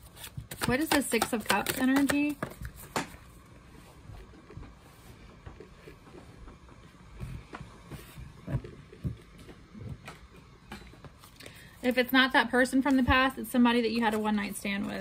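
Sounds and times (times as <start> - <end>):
cards being shuffled: 0.0 - 3.1.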